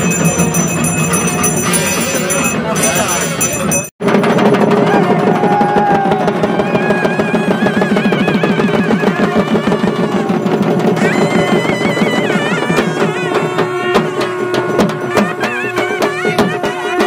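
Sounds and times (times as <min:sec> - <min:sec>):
reed wind instrument melody: 0:00.0 - 0:03.8, 0:04.9 - 0:17.0
drums beaten in a fast roll: 0:00.0 - 0:17.0.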